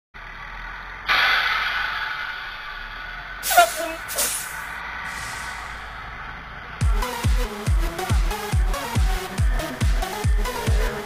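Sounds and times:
bus engine humming: 0.2 - 11.0
air brakes hissing: 1.0 - 6.2.

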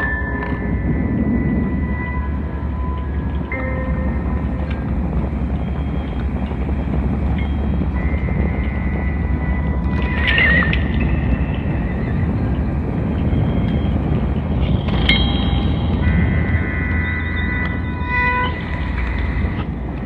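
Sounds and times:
low synthesizer drone: 0.0 - 20.0
warbling wavering tone: 0.0 - 20.0
held high tones: 13.3 - 19.8.

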